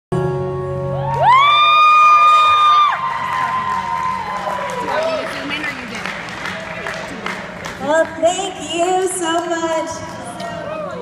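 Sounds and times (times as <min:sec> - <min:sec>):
crowd noise: 0:02.6 - 0:11.0.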